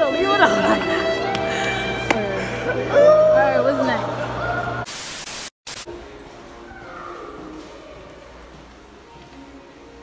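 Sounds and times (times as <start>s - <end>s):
tv static hiss: 4.8s - 6.0s.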